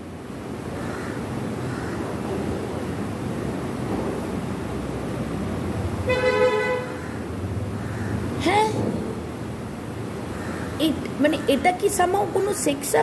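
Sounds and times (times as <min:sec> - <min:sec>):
road traffic rumble: 0:00.0 - 0:13.0
vehicle horn: 0:06.0 - 0:07.0.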